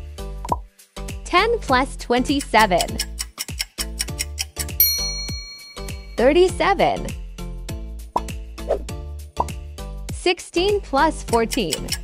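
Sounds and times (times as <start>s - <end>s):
playful background music: 0.0s - 12.0s.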